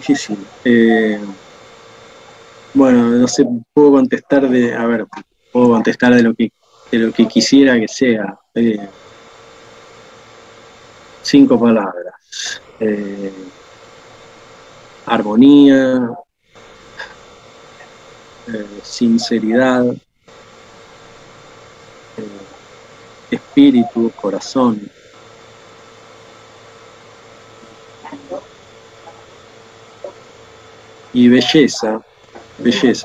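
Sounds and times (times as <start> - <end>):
faint steady hum: 0.0 - 33.0
microphone hiss: 0.0 - 33.0.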